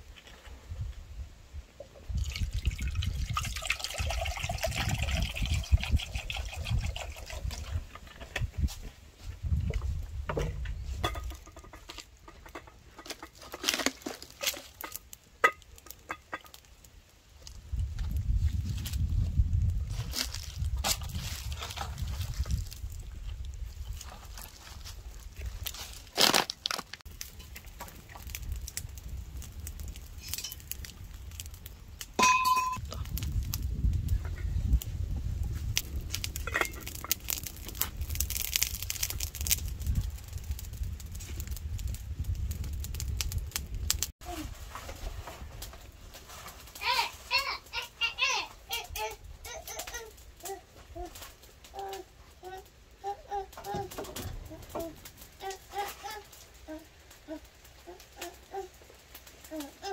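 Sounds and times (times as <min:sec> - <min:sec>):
water pouring into a metal pot: 0:02.1 - 0:08.0.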